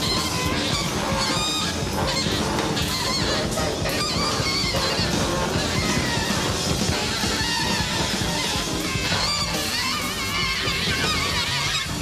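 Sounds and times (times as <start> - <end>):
live jazz band: 0.0 - 12.0
saxophone honking high notes: 0.0 - 12.0.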